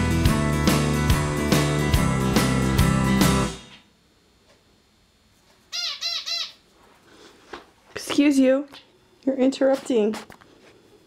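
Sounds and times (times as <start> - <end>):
background rock music: 0.0 - 3.8
bird chirping: 5.7 - 6.6.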